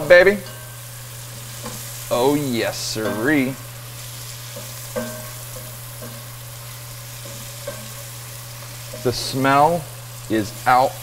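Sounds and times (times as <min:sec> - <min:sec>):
meat sizzling in hot oil: 0:00.0 - 0:11.0.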